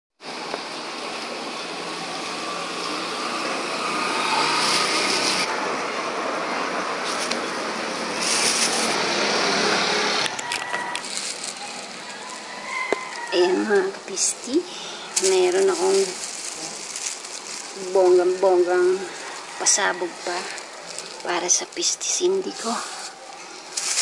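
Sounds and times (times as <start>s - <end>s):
steady rushing noise: 0.2s - 24.0s
plastic bag crinkling: 8.2s - 9.0s, 10.3s - 24.0s.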